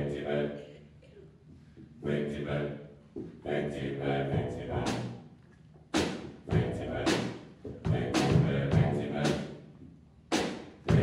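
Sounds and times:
mixed choir singing: 0.0s - 0.8s, 2.0s - 2.8s, 3.4s - 5.1s, 6.5s - 9.6s
heavy drum hits: 6.0s - 9.0s, 10.4s - 11.0s.

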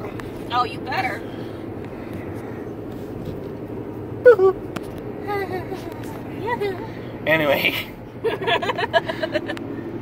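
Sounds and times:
car engine hum inside cabin: 0.0s - 10.0s
man laughing: 8.2s - 9.6s.

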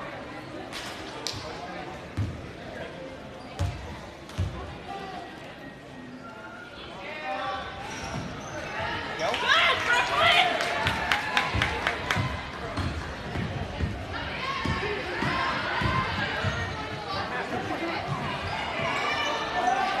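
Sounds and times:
crowd cheering: 9.2s - 12.6s.

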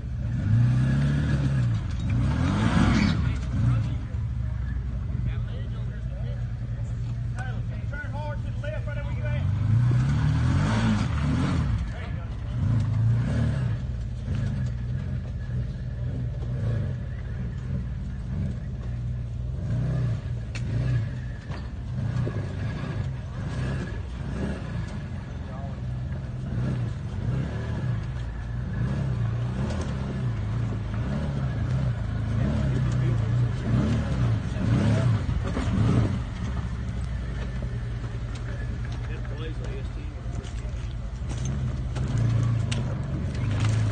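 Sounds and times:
utility vehicle engine revving: 0.0s - 43.9s.

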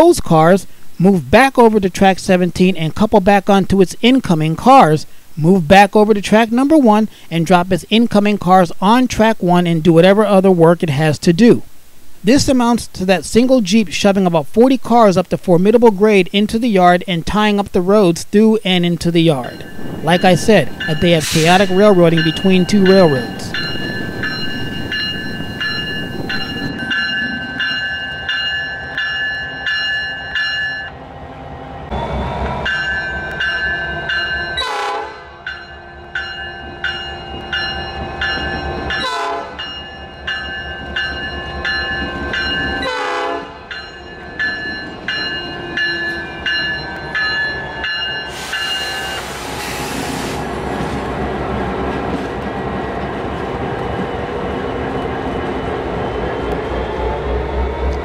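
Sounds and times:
diesel locomotive rumbling: 12.5s - 58.0s
crossing bell ringing: 18.8s - 31.1s, 31.9s - 49.2s.

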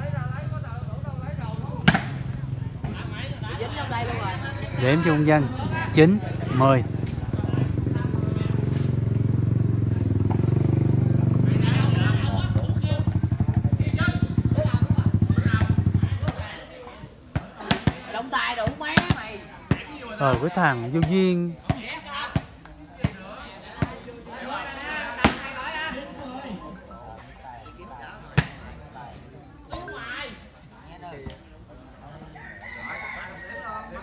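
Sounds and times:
voices talking: 0.0s - 34.0s
sharp smacks: 1.8s - 2.3s, 25.2s - 25.5s
volleyball struck with sharp knock: 1.8s - 2.3s, 18.6s - 20.4s
rooster crowing: 32.2s - 34.0s.

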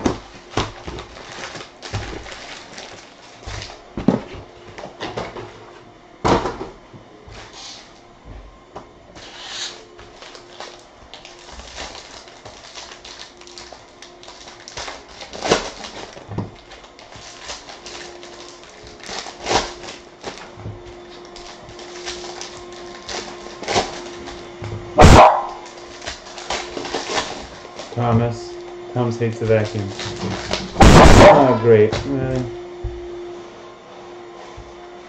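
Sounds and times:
plastic wrappers crinkling and tearing: 0.0s - 3.8s, 9.2s - 24.6s, 25.2s - 28.4s, 29.0s - 32.5s
vacuum cleaner hum: 0.0s - 35.0s
dog barking: 25.0s - 25.6s, 30.8s - 31.6s.

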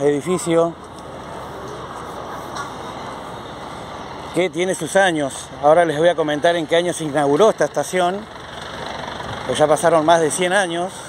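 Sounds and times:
outdoor background hum: 0.0s - 11.0s.

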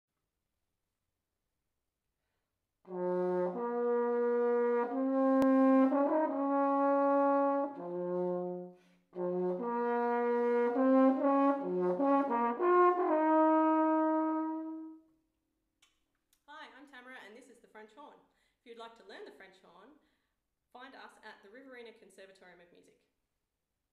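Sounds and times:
french horn melody: 2.8s - 15.2s.

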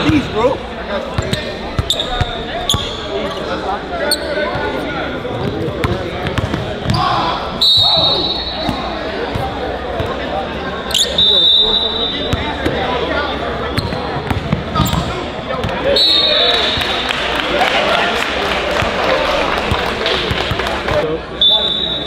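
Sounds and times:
sneakers squeaking: 0.0s - 17.1s
crowd chatter: 0.0s - 22.0s.

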